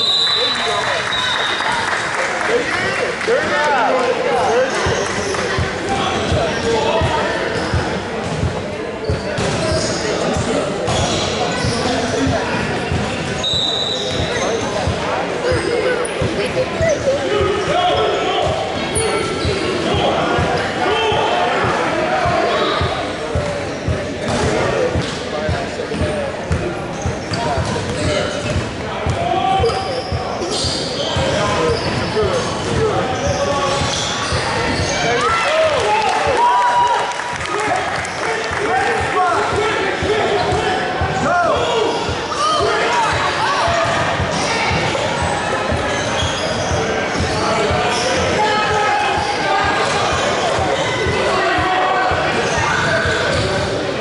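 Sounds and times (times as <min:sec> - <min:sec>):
chatter of many voices: 0:00.0 - 0:54.0.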